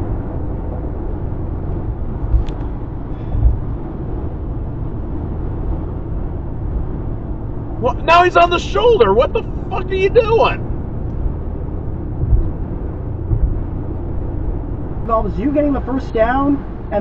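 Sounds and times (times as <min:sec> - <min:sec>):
car road rumble: 0:00.0 - 0:17.0
brief thumps: 0:12.2 - 0:13.8.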